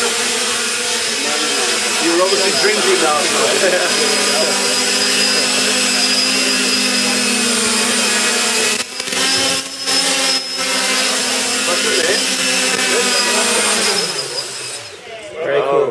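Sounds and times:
drone motors whirring: 0.0s - 15.3s.

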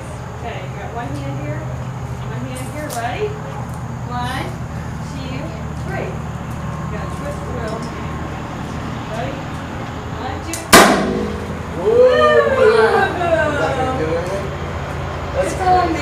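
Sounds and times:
powder cannon pop: 10.7s - 11.6s
high-pitched voices shrieking and cheering: 11.7s - 14.0s.

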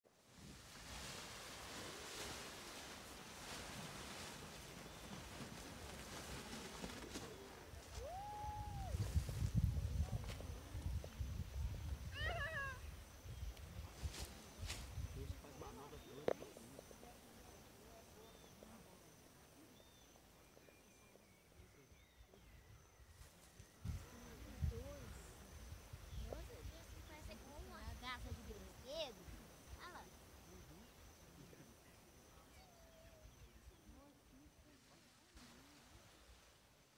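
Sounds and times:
wind buffeting microphone: 7.9s - 15.4s.

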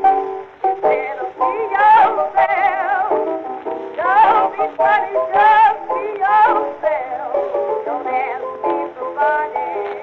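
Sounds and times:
instrumental accompaniment: 0.0s - 10.0s
woman singing with vibrato: 0.8s - 3.3s, 4.0s - 10.0s.

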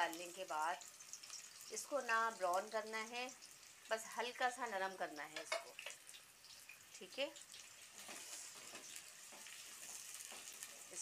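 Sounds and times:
onions sizzling in oil: 0.0s - 11.0s
spatula stirring in pot: 7.8s - 11.0s.

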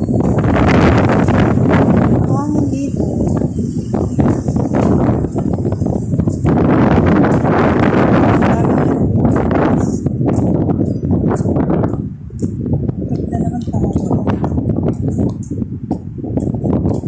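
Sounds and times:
footsteps on pavement: 0.0s - 17.0s.

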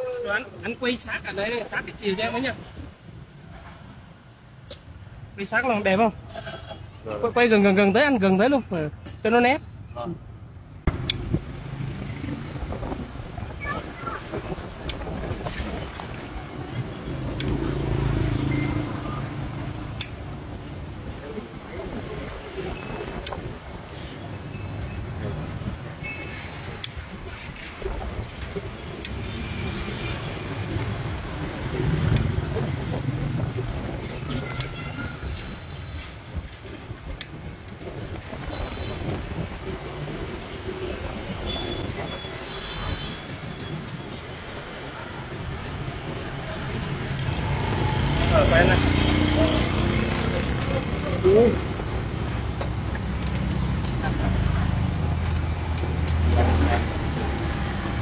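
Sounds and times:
metal scraping: 6.3s - 6.9s.

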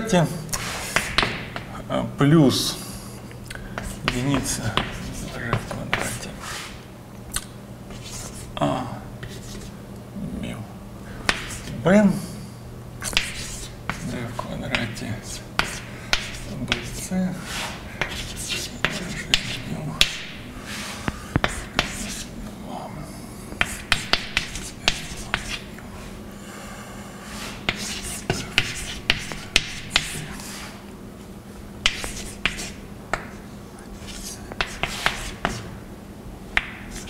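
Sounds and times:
chalk scratching: 0.6s - 1.4s, 3.8s - 6.8s, 7.9s - 8.5s, 9.2s - 9.8s, 11.3s - 11.8s, 13.0s - 22.3s, 23.6s - 25.7s, 27.3s - 30.8s, 31.8s - 32.8s, 33.9s - 35.7s, 36.6s - 37.0s
chalk tapping on blackboard: 0.6s - 1.7s, 3.8s - 6.3s, 11.2s - 11.7s, 13.0s - 17.0s, 17.6s - 22.3s, 23.6s - 25.7s, 27.6s - 30.6s, 31.8s - 33.4s, 34.0s - 35.7s, 36.6s - 37.0s.

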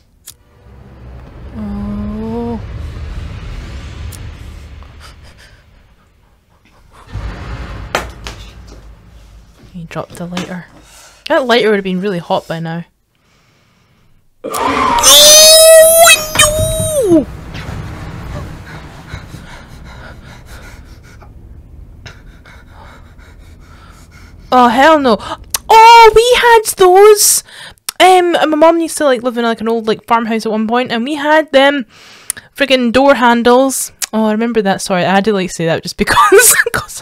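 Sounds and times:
low steady drone: 0.0s - 11.3s, 15.1s - 27.6s
low rumble: 0.0s - 12.1s, 14.1s - 28.4s.

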